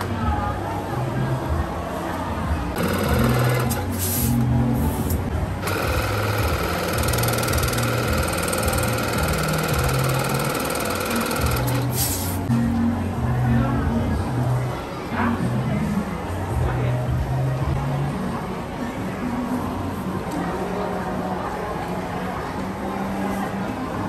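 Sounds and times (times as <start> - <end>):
background music: 0.0 - 22.9
electric balloon inflator: 5.6 - 12.4.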